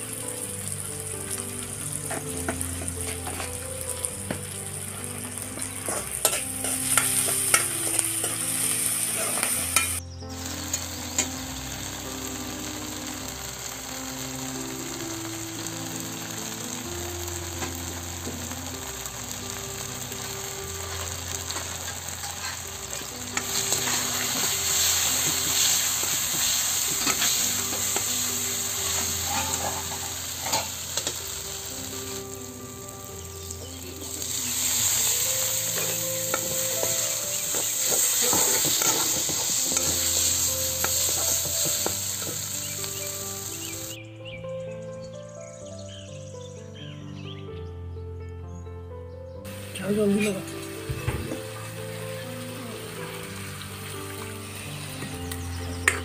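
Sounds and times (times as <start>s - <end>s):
onions sizzling in hot oil: 0.0s - 44.0s, 49.5s - 56.0s
spoon scraping a pan: 5.6s - 10.0s, 23.4s - 28.2s, 28.8s - 31.2s, 35.1s - 42.4s.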